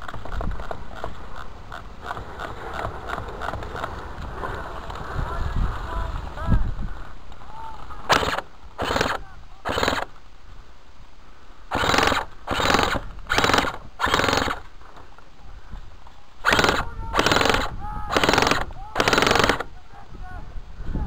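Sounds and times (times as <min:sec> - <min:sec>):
airsoft guns firing bursts: 0:08.1 - 0:10.1, 0:11.7 - 0:14.6, 0:16.4 - 0:19.7.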